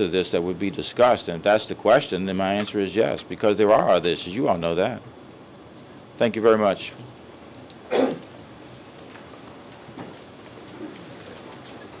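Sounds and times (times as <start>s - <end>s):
room noise hiss: 0.0s - 12.0s
faint rustling: 7.0s - 12.0s.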